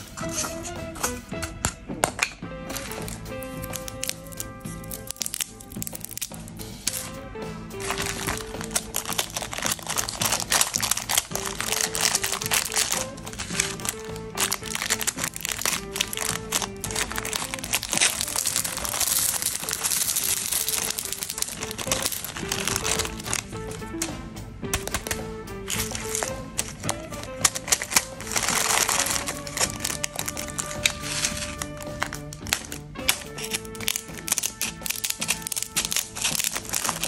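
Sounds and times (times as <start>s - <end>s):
background music melody: 0.0s - 37.0s
cellophane bags crinkling: 2.7s - 7.1s, 7.8s - 24.1s, 24.7s - 37.0s
scissors snipping: 2.7s - 7.1s, 7.8s - 24.0s, 24.7s - 37.0s.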